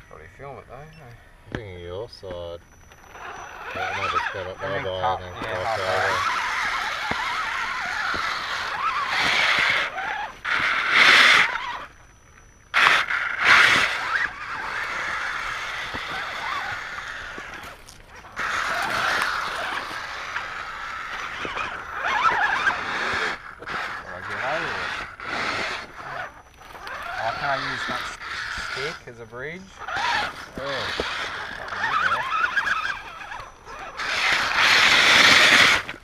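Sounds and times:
electric motors whining: 0:00.0 - 0:36.0.

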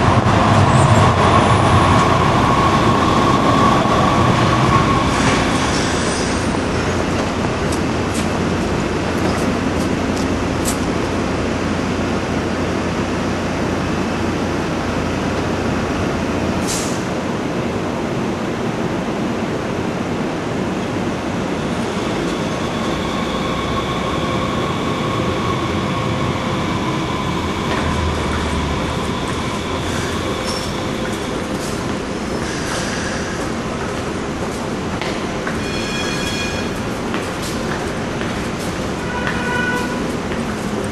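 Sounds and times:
train rumbling on rails: 0:00.0 - 0:40.9
high thin wheel squeal: 0:29.8 - 0:31.0, 0:35.6 - 0:36.9.

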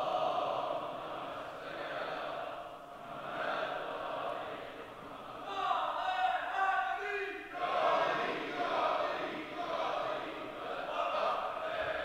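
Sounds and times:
congregation chanting in unison: 0:00.0 - 0:12.0.

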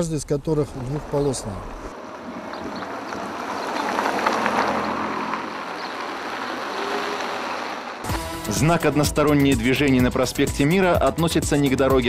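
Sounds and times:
vehicle passing by: 0:00.7 - 0:08.2.

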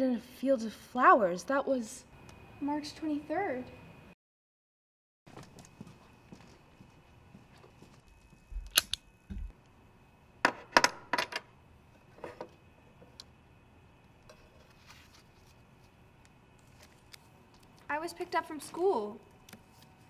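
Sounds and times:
sharp clicks: 0:08.6 - 0:09.0.

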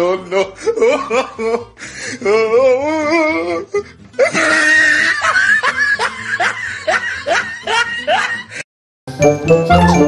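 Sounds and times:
person laughing: 0:00.0 - 0:03.6, 0:04.2 - 0:08.6.

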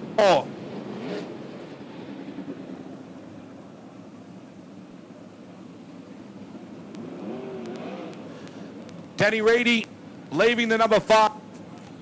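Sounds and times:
engines droning at low revs: 0:00.0 - 0:12.0.

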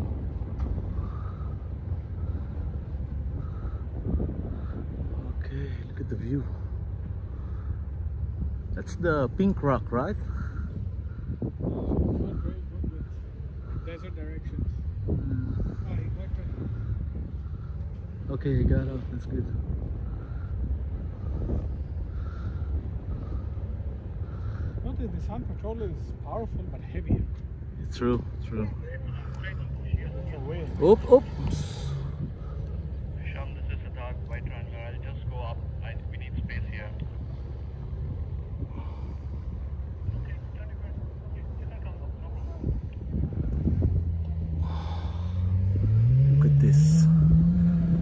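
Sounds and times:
engine idling: 0:00.0 - 0:45.7
wind buffeting microphone: 0:00.0 - 0:46.3.

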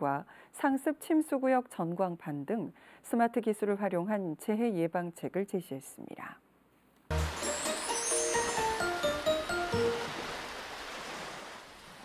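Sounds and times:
rushing water noise: 0:07.1 - 0:12.0.

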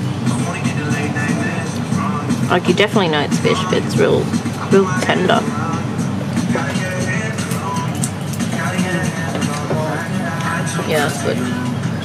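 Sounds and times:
background music: 0:00.0 - 0:12.0
indistinct chatter: 0:00.0 - 0:12.0.

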